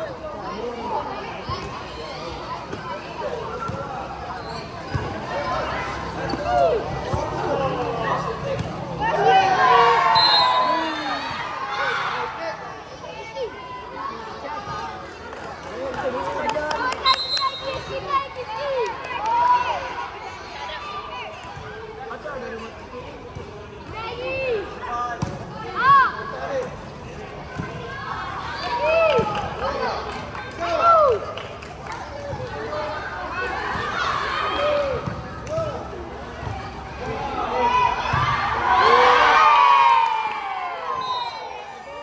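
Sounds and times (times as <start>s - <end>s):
young players calling and shouting: 0.0s - 42.0s.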